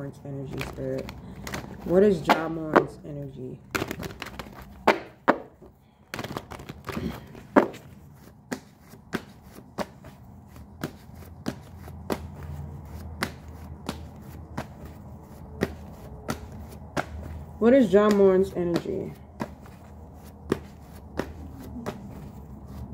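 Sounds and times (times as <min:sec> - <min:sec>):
cards being shuffled: 0:00.3 - 0:02.9, 0:03.6 - 0:22.9.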